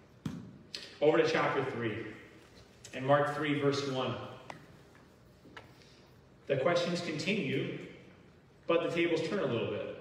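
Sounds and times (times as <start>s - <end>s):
man speaking: 0.8s - 4.5s, 6.4s - 10.0s.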